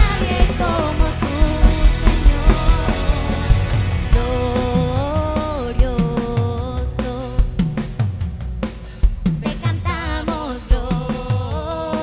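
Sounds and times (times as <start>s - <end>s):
drum kit beat: 0.0s - 12.0s
live worship band: 0.0s - 12.0s.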